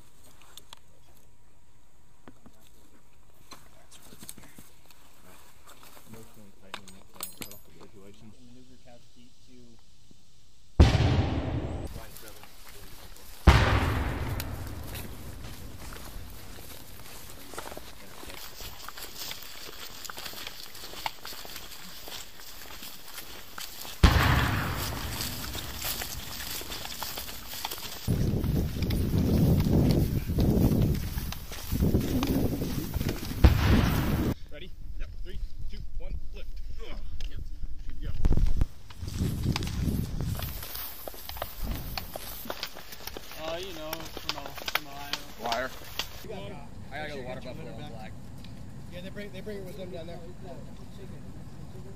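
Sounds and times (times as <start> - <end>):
loud bangs with rumble: 10.8 - 12.0, 13.5 - 16.4, 24.0 - 26.4, 33.4 - 34.4
rough rustling noise: 11.2 - 34.4, 37.8 - 46.3.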